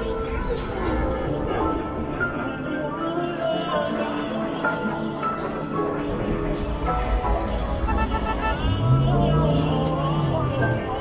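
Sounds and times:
song with sung vocals: 0.0 - 11.0.

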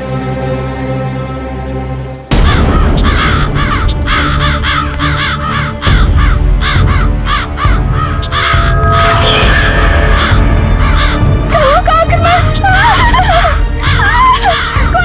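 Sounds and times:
background music with low drone: 0.0 - 15.0
crows cawing: 2.4 - 11.6, 12.2 - 15.0.

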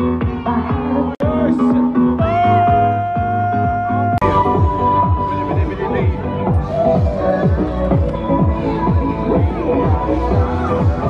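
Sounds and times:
electronic dance music: 0.0 - 11.0
kick drum: 0.1 - 1.5.

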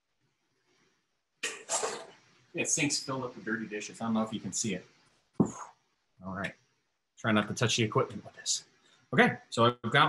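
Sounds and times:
man coughing: 1.4 - 2.1.

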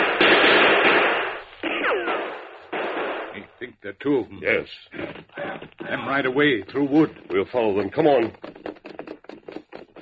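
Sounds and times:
gunshots with echo: 0.0 - 3.6.

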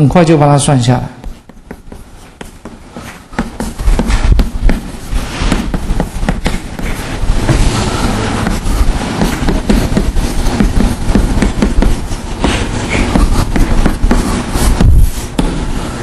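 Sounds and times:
writing taps and scratches on board: 1.2 - 4.9, 5.5 - 7.0, 9.2 - 15.5.

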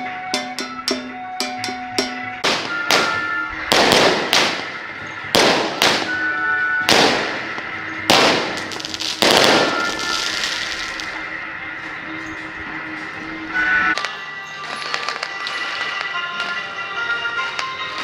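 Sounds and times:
firecrackers banging: 0.0 - 18.0
music with held notes: 0.0 - 18.0.

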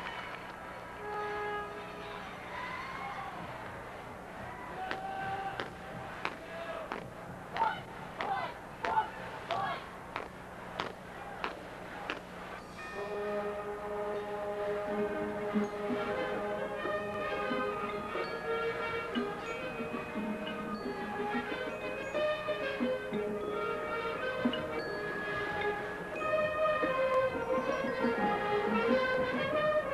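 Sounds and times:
band playing sustained chords: 12.4 - 29.9
mallet percussion bell notes: 12.7 - 13.7, 16.8 - 29.4.

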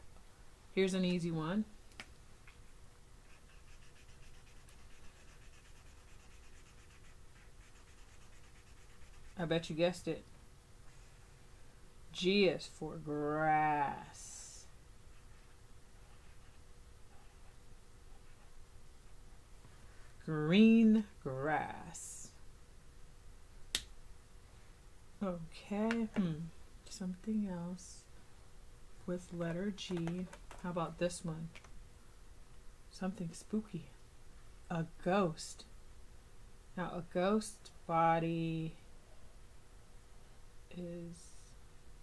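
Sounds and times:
marker scribbling on paper: 3.2 - 9.6.

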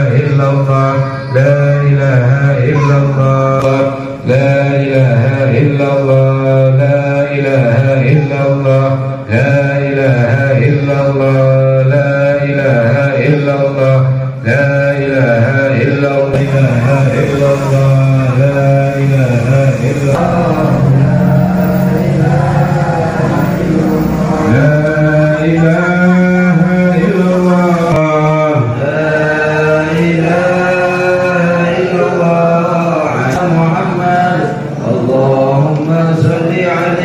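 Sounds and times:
man chanting melodic phrases: 0.0 - 37.0.

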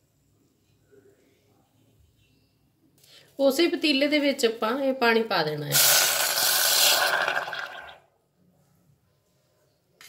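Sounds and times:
water hissing in hot pot: 5.7 - 8.0.

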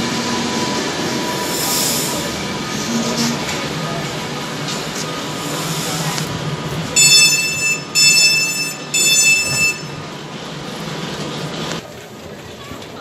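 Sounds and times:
train humming and rumbling: 0.0 - 13.0
high electronic door beeps: 7.0 - 10.1.

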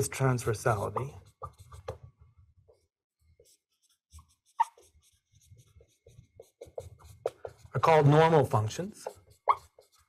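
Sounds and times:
marker squeaking on a whiteboard: 0.7 - 10.0.

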